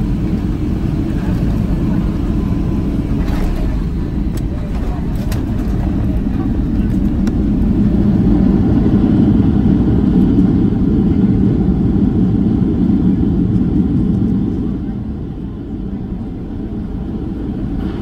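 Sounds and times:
aircraft cabin rumble: 0.0 - 18.0.

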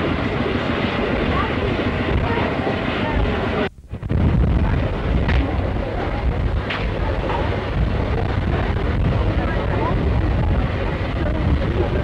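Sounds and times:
indistinct crowd voices: 0.0 - 12.0
wind buffeting microphone: 0.0 - 12.0.

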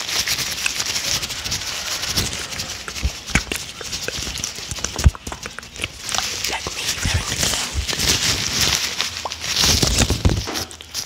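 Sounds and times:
disposable gloves crinkling: 0.0 - 11.0.

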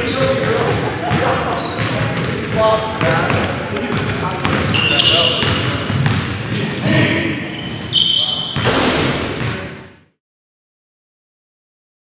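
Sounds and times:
sneaker squeak on hardwood floor: 0.0 - 2.4, 4.4 - 8.8
basketball thumping: 8.6 - 9.9.

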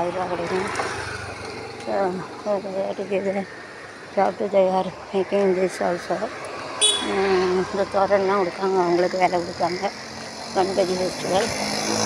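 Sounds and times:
person talking: 0.0 - 0.7, 1.8 - 3.5, 4.2 - 6.3, 7.0 - 9.9, 10.5 - 12.0
street traffic: 0.0 - 12.0.

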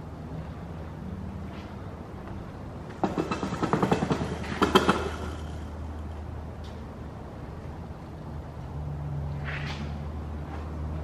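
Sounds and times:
rapid clattering rattle: 2.9 - 5.7.

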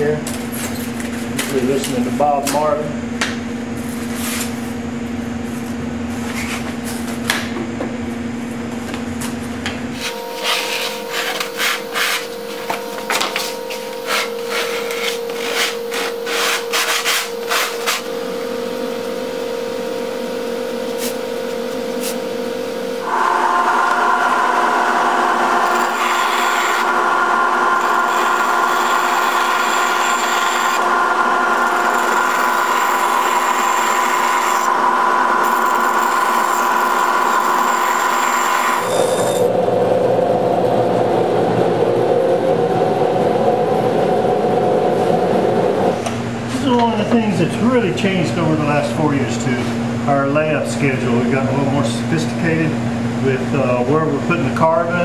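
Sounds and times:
steady machine hum: 0.0 - 55.0
band saw cutting: 10.0 - 18.2, 23.0 - 39.5.

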